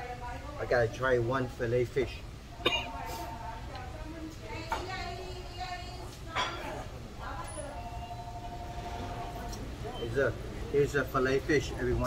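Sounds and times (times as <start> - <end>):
faint voices: 2.2 - 12.0.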